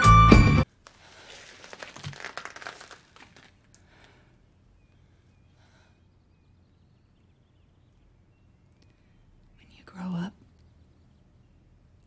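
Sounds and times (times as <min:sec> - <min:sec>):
crinkling and rustling: 0:00.7 - 0:04.2.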